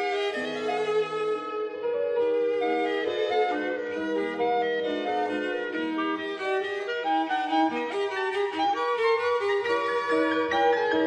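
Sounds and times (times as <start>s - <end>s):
clarinet cello and piano piece: 0.0s - 11.0s.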